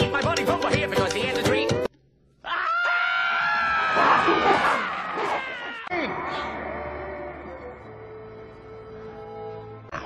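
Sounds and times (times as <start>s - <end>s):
cartoon characters screaming: 2.4s - 7.2s.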